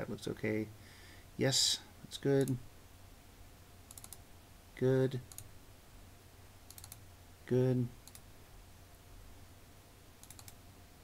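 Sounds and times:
person speaking: 1.4s - 2.7s, 7.4s - 8.0s
computer clicks: 2.4s - 2.6s, 3.9s - 4.2s, 5.3s - 5.5s, 6.7s - 7.0s, 8.0s - 8.3s, 10.2s - 10.6s.

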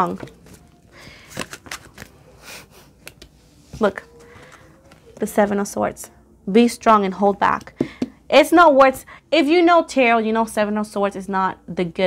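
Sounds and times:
card rustle: 0.1s - 2.2s
cards being shuffled: 0.1s - 2.2s, 2.9s - 3.4s
card flicks and slaps: 3.0s - 3.3s.

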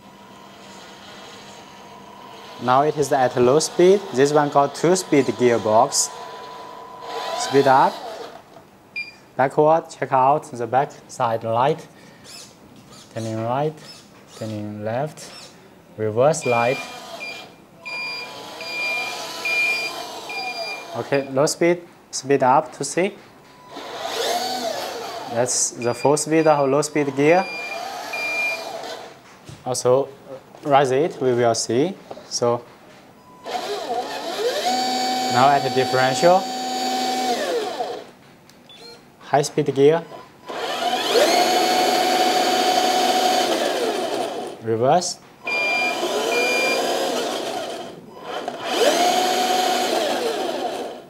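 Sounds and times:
motor whine: 0.2s - 8.4s, 16.4s - 21.2s, 23.7s - 25.3s, 33.4s - 38.1s, 40.4s - 44.6s, 45.4s - 51.0s
electronic reversing beeper: 45.5s - 46.9s.

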